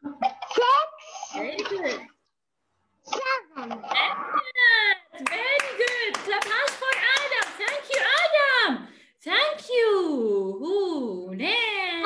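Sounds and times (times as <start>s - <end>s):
quick hand clapping: 5.2s - 8.3s.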